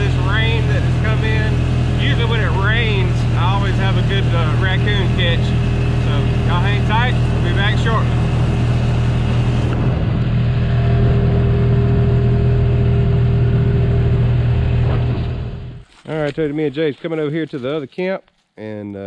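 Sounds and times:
utility vehicle engine droning: 0.0s - 17.8s.

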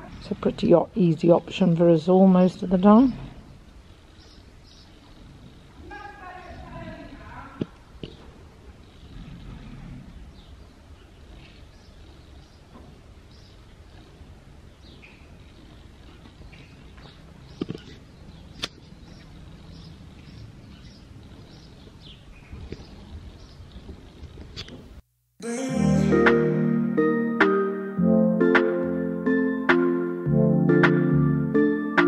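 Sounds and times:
small birds chirping: 0.0s - 24.9s.

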